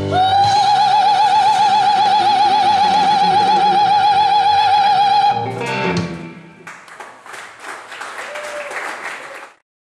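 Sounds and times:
person singing: 0.0s - 5.7s
guitar: 0.0s - 6.7s
audience clapping: 6.6s - 9.6s.

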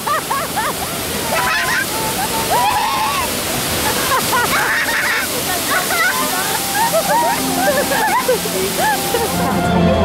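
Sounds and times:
water pouring down rocks: 0.0s - 9.6s.

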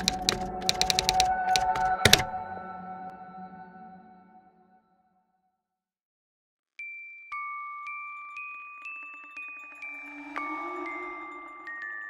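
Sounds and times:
sharp key clicks: 0.0s - 2.3s
ambient music drone: 8.3s - 12.0s.

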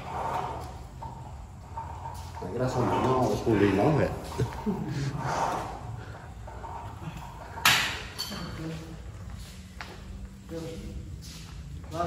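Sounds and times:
low background voices: 0.0s - 12.0s.

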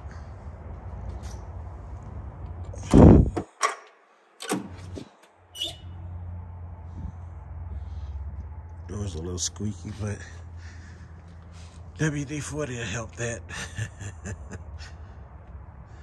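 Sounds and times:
door clicks: 2.7s - 5.0s
door hinge squeak: 5.6s - 6.0s.

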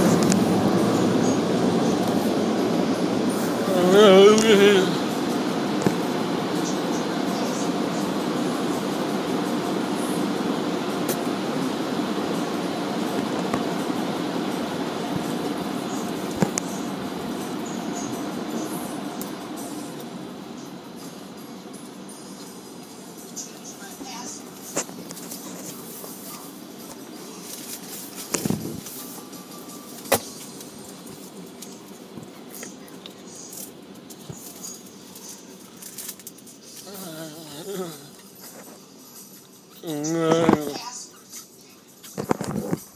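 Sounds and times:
muffled car wash machinery rushing: 0.0s - 42.9s.

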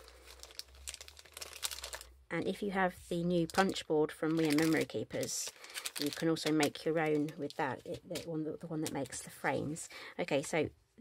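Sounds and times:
plastic packet crinkling: 0.0s - 2.2s, 3.4s - 9.4s.

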